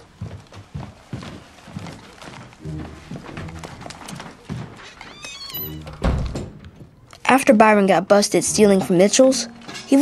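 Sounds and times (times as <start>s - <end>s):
steps on wooden floor: 0.0s - 7.0s
door hinge creaking: 2.8s - 6.8s.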